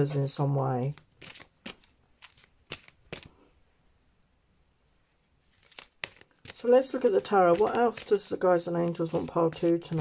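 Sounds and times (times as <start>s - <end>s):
cards flicking and rustling: 0.9s - 3.4s, 5.4s - 10.0s.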